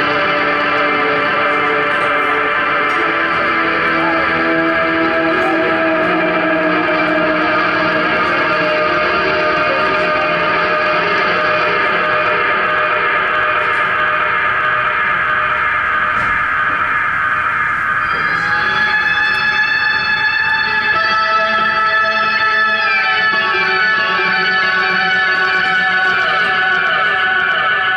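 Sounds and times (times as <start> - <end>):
ambient electric guitar tones: 0.0 - 27.9
higher held guitar notes: 0.0 - 27.9.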